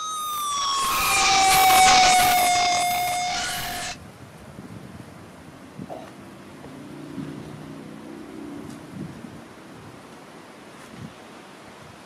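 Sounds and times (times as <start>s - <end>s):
held synthetic tones: 0.0s - 4.0s
siren-like electronic sweep: 0.0s - 4.0s.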